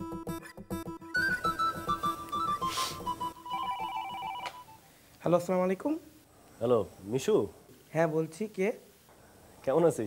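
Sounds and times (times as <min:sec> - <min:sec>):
electronic telephone ring: 0:03.3 - 0:04.8.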